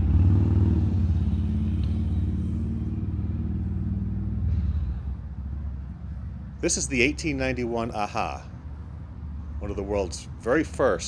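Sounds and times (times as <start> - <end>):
engine pulsing rumble: 0.0 - 11.0.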